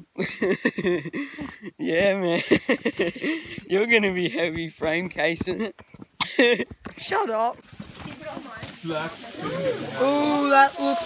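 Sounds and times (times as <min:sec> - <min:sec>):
food sizzling on a hotplate: 0:07.6 - 0:11.0
faint voices: 0:09.0 - 0:11.0.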